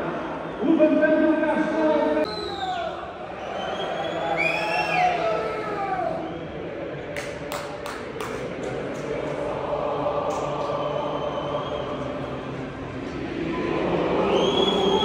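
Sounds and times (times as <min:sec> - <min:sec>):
echoing public address voice: 0:00.0 - 0:03.4
stadium crowd noise: 0:00.0 - 0:15.0
sharp claps: 0:07.2 - 0:09.3.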